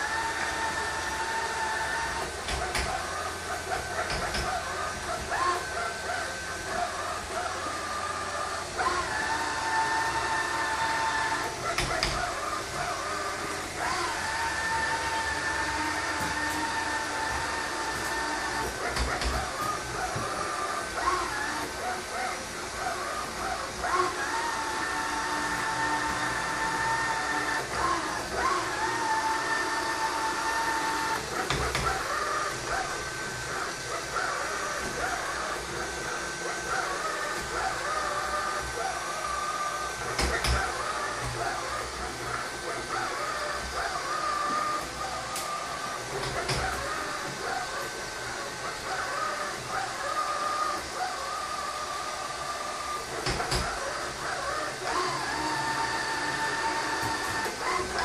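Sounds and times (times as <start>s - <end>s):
robot vacuum cleaner whine: 0.0s - 58.0s.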